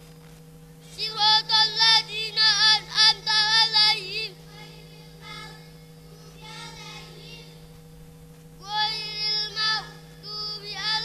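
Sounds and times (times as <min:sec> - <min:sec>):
low electrical hum: 0:00.0 - 0:11.0
children chanting in unison: 0:00.9 - 0:07.6, 0:08.6 - 0:11.0.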